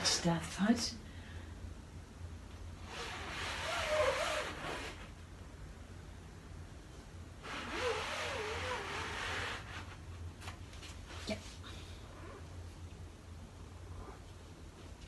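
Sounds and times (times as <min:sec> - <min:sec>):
squeegee scraping across mesh: 0:02.8 - 0:05.1.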